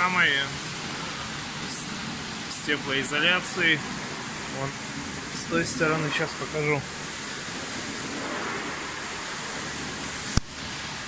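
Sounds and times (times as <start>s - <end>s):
rushing background hiss: 0.0s - 11.0s.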